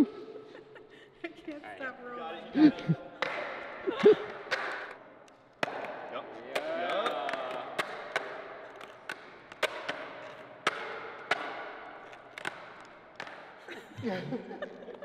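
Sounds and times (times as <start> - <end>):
skateboard wheels clacking on concrete: 3.2 - 13.6.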